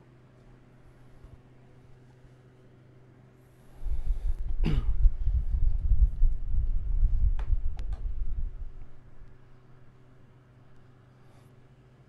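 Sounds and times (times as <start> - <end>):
low rumble: 3.9 - 9.3
man coughing: 4.6 - 5.0.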